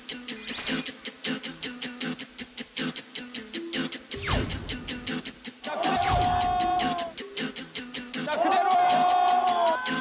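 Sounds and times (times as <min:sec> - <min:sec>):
upbeat background music: 0:00.0 - 0:10.0.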